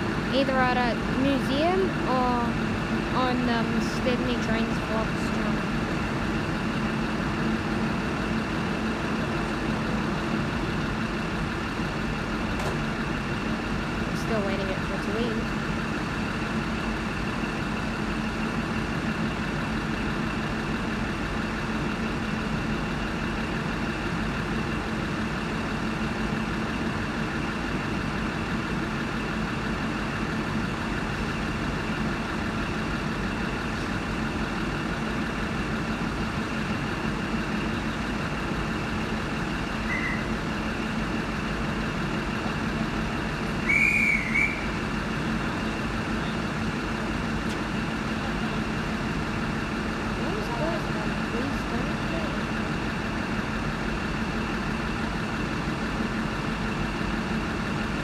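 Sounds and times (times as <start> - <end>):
diesel engine idling: 0.0 - 58.0
high whistle-like chirp: 39.9 - 40.3, 43.6 - 44.7.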